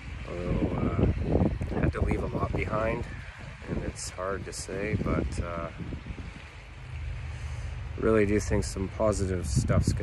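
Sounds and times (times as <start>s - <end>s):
faint outdoor hiss: 0.0s - 10.0s
wind rumble on microphone: 0.0s - 10.0s.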